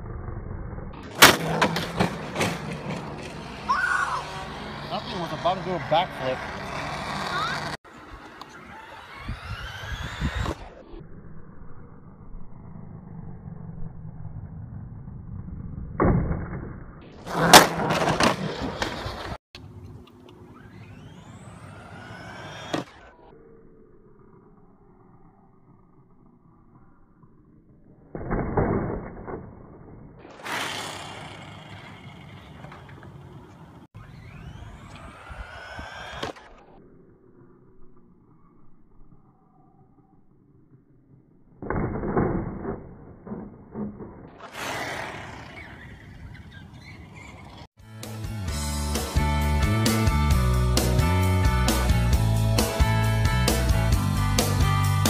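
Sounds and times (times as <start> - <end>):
electric toy truck motor whining: 3.1 - 11.0, 20.3 - 25.4, 30.3 - 33.4, 34.0 - 37.4.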